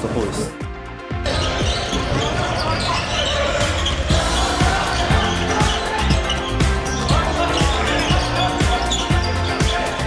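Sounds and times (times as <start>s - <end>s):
players calling out: 1.3s - 10.0s.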